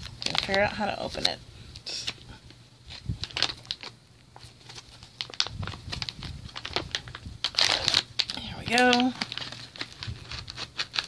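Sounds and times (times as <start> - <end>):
plastic pouch crinkling: 0.0 - 1.4, 2.8 - 11.0.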